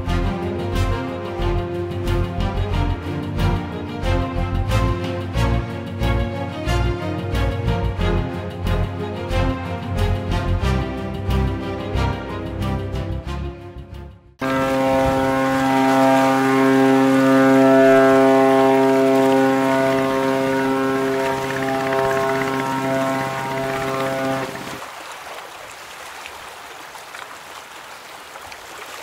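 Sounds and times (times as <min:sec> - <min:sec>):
ship's horn blast: 0:00.0 - 0:09.9, 0:14.4 - 0:24.8.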